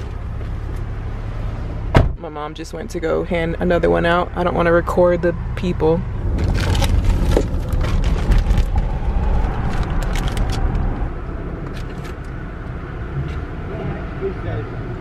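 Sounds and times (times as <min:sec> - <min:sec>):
car cabin rumble: 0:00.0 - 0:15.0
plastic bags crinkling: 0:06.4 - 0:10.7.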